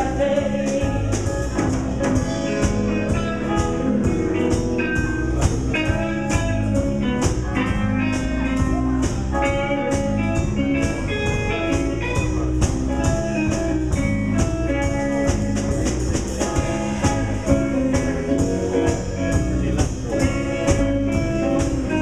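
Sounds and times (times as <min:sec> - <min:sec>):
bass guitar: 0:00.0 - 0:22.0
drum kit: 0:00.0 - 0:22.0
electric guitar lead: 0:00.0 - 0:22.0.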